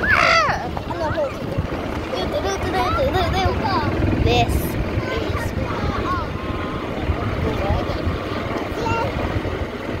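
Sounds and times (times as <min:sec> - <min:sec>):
low road rumble: 0:00.0 - 0:10.0
wind buffeting microphone: 0:00.0 - 0:10.0.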